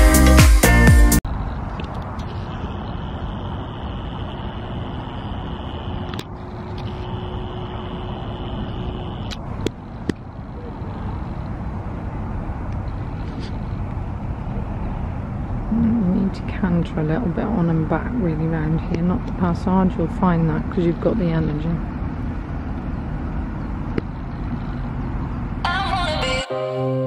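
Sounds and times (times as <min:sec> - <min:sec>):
low outdoor rumble: 0:00.2 - 0:26.4
faint steady hum: 0:01.3 - 0:26.4.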